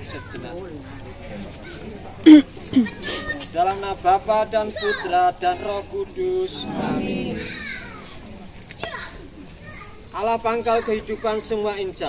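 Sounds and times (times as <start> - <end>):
faint voices: 0.0 - 10.1.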